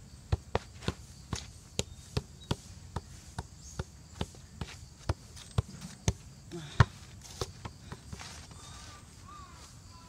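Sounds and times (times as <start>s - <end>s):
shoe tapping football: 0.3s - 8.3s.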